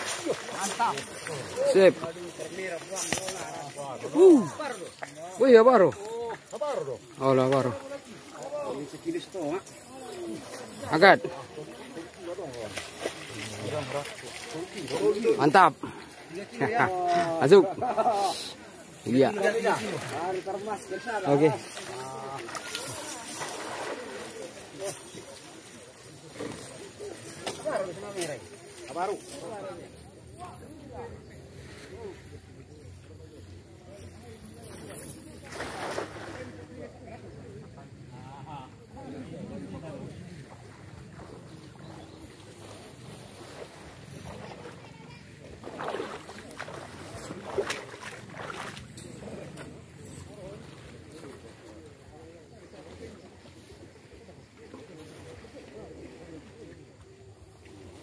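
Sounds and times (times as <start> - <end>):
faint distant voices: 0.0 - 58.0
people talking: 0.0 - 58.0.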